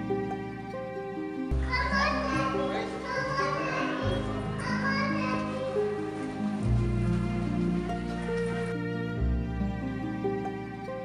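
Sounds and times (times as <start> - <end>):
music with held tones: 0.0 - 11.0
children talking and playing: 0.7 - 8.9.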